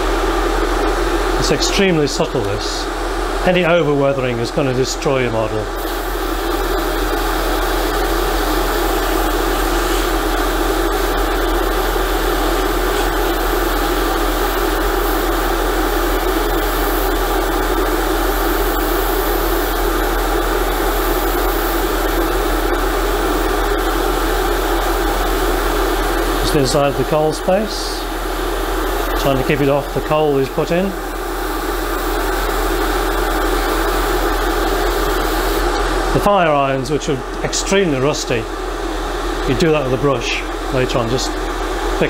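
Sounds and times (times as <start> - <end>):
airbrush spraying hiss: 5.8 - 35.9.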